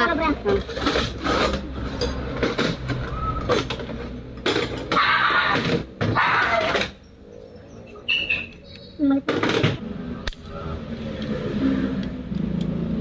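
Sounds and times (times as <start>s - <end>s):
people talking: 0.0s - 0.7s, 8.9s - 9.4s.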